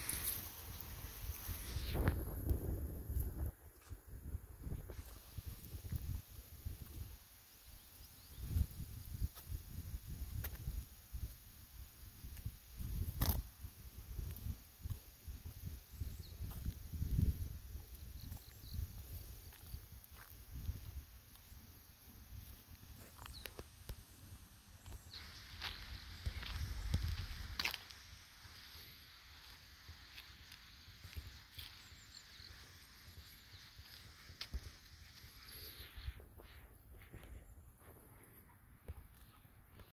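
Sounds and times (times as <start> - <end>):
footsteps on paved path: 0.0 - 7.1, 8.4 - 11.4, 12.1 - 39.9.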